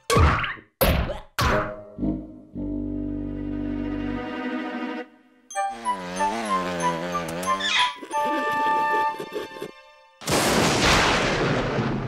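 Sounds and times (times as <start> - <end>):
cartoon music: 5.5 - 9.8.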